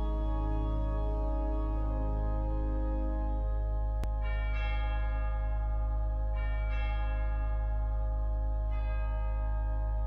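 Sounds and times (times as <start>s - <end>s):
low sustained drone: 0.0s - 10.0s.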